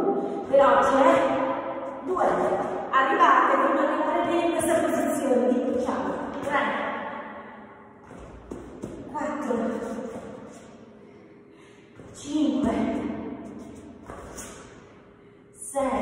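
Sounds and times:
woman speaking in a large hall: 0.0 - 8.0, 9.0 - 13.6, 15.2 - 16.0.

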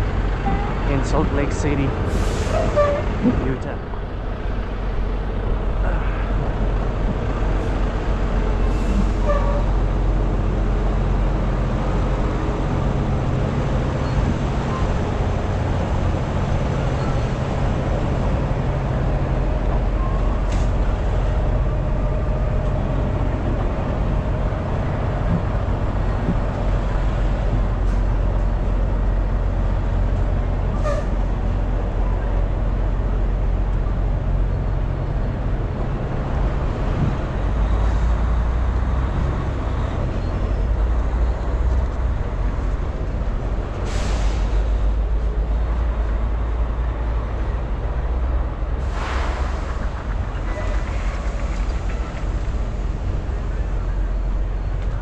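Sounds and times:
diesel engines idling: 0.0 - 55.0.

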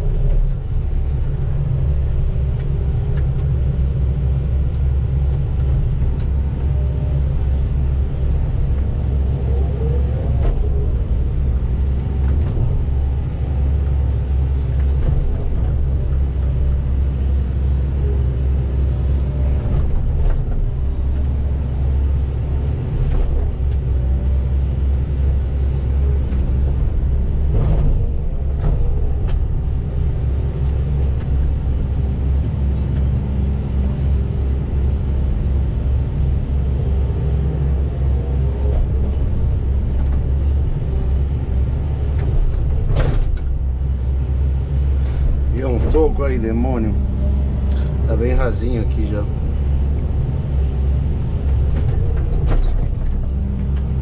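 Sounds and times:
excavator diesel engine rumbling: 0.0 - 54.0.

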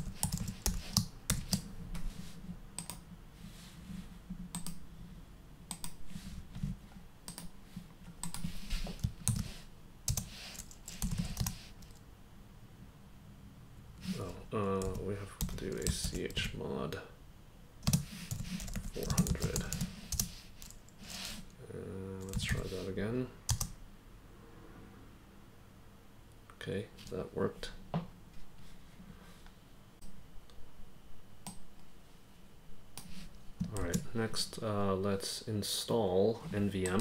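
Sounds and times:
man speaking: 14.1 - 17.1, 19.0 - 19.8, 21.6 - 23.4, 33.7 - 37.0.

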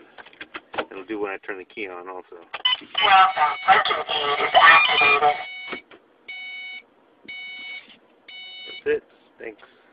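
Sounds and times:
multi-pitched electronic beeps: 2.7 - 8.8.

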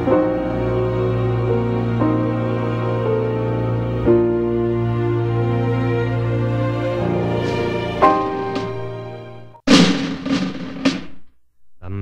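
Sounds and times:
music: 0.0 - 9.6
drum strikes ringing: 9.7 - 11.3.

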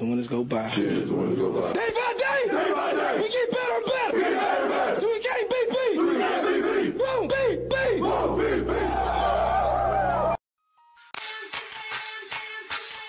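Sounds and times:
players shouting and whooping: 6.0 - 10.4.

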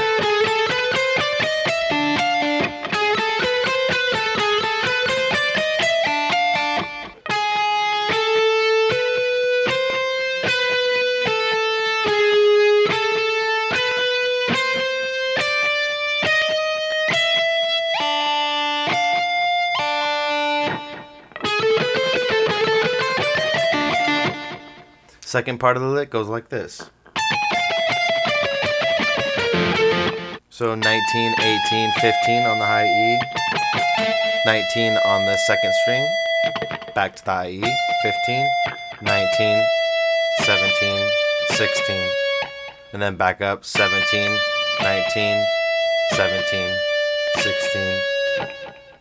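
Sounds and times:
electric guitar picked notes: 0.0 - 25.2, 27.2 - 49.0.

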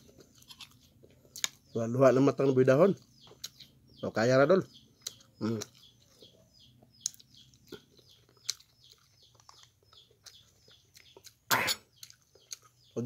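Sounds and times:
small birds chirping: 0.0 - 13.0
person coughing: 11.5 - 11.9.

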